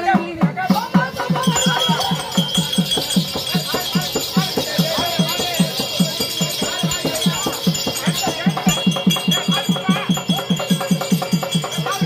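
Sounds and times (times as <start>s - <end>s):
hand drum beating fast rhythm: 0.0s - 12.0s
metallic jingling: 0.8s - 12.0s.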